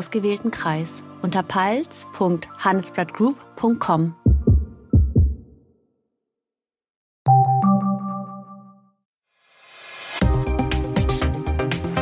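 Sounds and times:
deep bass thumps: 0:04.3 - 0:05.6.

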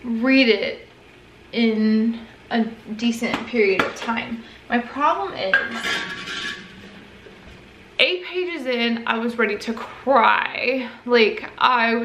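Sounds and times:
faint kitchen background: 0:00.0 - 0:12.0
kitchen dishes clinking: 0:05.5 - 0:07.8.

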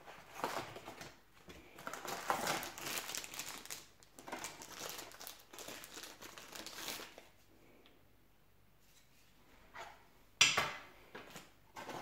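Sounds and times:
plastic bag crinkling: 0:00.1 - 0:07.4.

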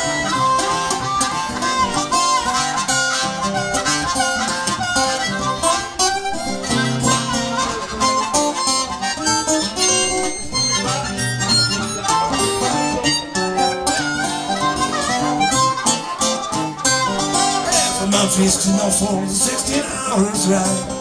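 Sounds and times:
acoustic guitar accompaniment: 0:00.0 - 0:21.0
harmonica solo: 0:00.0 - 0:21.0.

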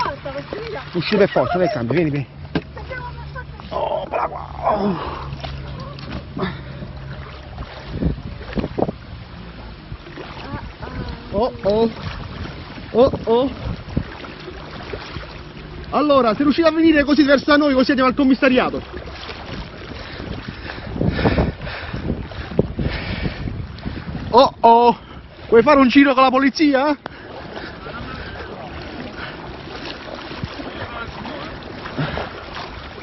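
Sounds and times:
floodwater rushing: 0:00.0 - 0:33.0
water splashing from wading: 0:00.0 - 0:33.0
wind noise on microphone: 0:04.0 - 0:15.4, 0:18.8 - 0:26.1.

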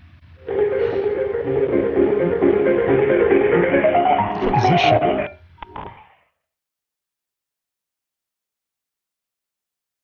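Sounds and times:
piano hold music over phone: 0:00.4 - 0:05.3.

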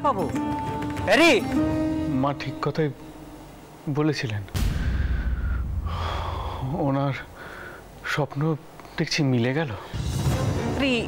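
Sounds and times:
deep boom sound effect: 0:04.6 - 0:06.9.

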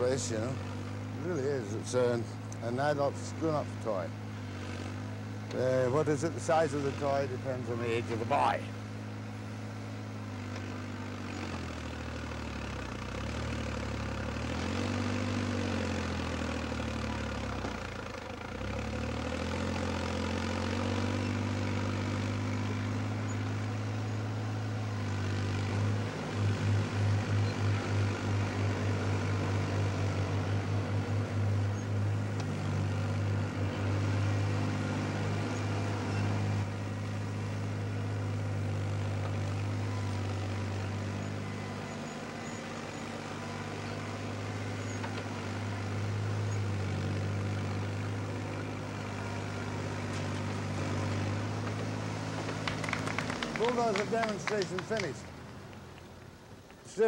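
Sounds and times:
crawler loader engine under load: 0:00.0 - 0:57.0.

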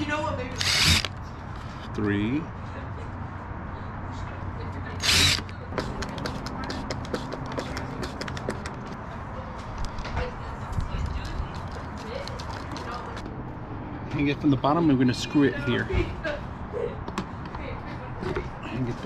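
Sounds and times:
cordless drill burst: 0:00.5 - 0:01.2, 0:05.0 - 0:05.5
screwdriver clicking: 0:00.6 - 0:01.2, 0:05.0 - 0:05.5.

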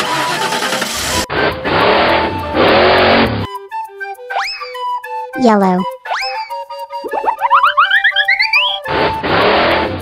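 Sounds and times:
cartoon race car rush: 0:00.0 - 0:03.5, 0:07.1 - 0:10.0.

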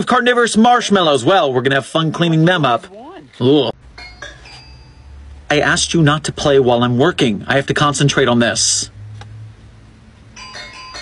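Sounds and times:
electronic doorbell chime: 0:03.9 - 0:05.3, 0:10.4 - 0:11.0.

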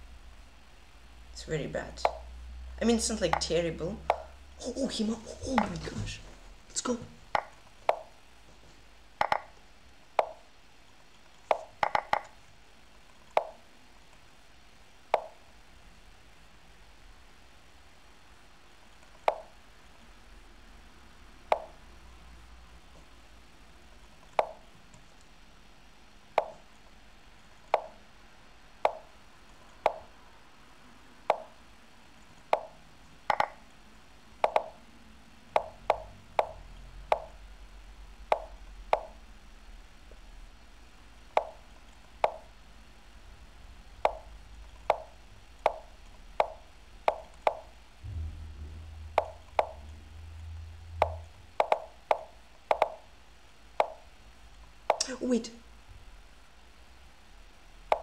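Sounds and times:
short wooden tapping sounds: 0:11.5 - 0:12.3.

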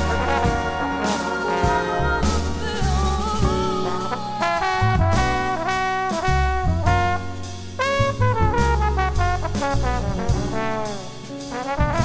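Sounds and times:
bass and drums: 0:00.0 - 0:12.0
jazz big band playing: 0:00.0 - 0:12.0
trumpets and trombones in chords: 0:00.0 - 0:12.0.

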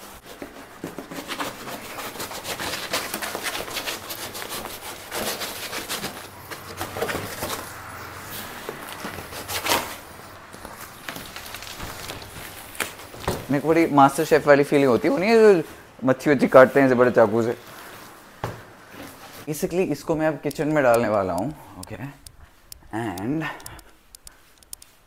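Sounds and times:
cardboard box tearing: 0:00.0 - 0:13.5.

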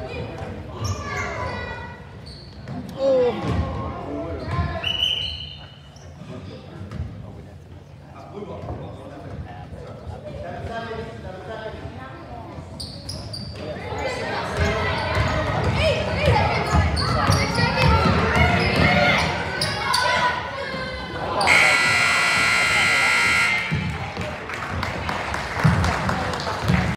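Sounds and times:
voices calling out: 0:18.6 - 0:24.0
scoreboard buzzer: 0:21.5 - 0:24.0.

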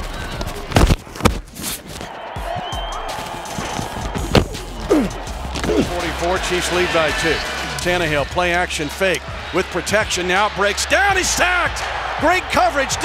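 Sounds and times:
background music: 0:02.2 - 0:13.0
thuds of players colliding: 0:03.5 - 0:04.9.

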